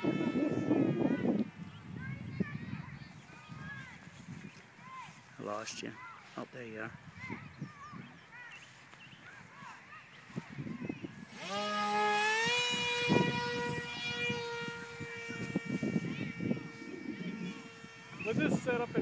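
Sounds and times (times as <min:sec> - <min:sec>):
electric motor propeller whine: 0:00.0 - 0:02.4, 0:10.2 - 0:19.0.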